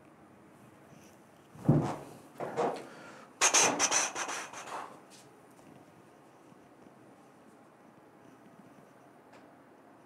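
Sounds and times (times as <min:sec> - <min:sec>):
rubbing rustling strokes: 0:03.4 - 0:05.2.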